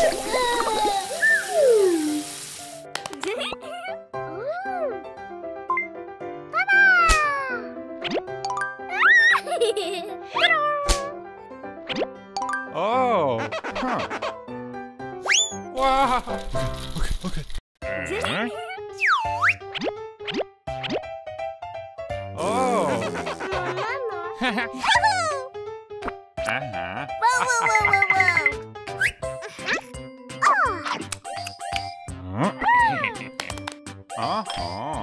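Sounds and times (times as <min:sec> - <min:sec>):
children's background music: 0:00.0 - 0:14.1, 0:22.1 - 0:35.0
high whiny cartoon cry: 0:22.4 - 0:24.6
comic pitch-glide effects: 0:22.4 - 0:24.8.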